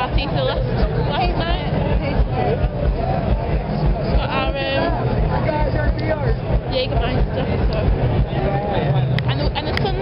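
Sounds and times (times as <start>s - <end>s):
crowd chatter: 0.0s - 10.0s
low rumble: 0.0s - 10.0s
people talking: 0.0s - 10.0s.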